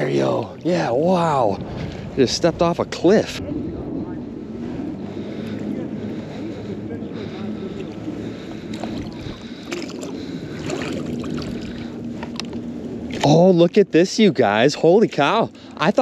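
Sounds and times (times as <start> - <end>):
river water sloshing: 7.2 - 13.8.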